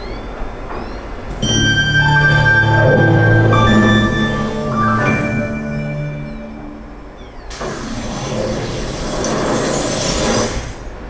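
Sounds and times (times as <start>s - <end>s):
loud rumbling noise: 1.1s - 11.0s.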